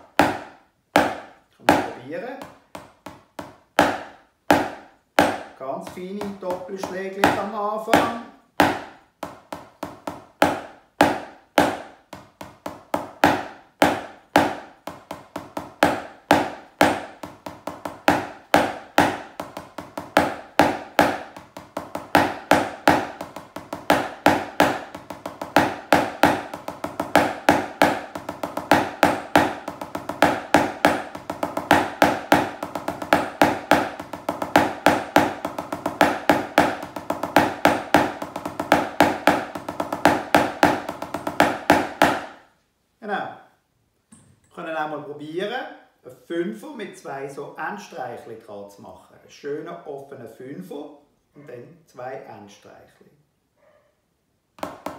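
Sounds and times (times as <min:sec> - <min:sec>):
drumsticks on practice pad: 0:00.0 - 0:42.5.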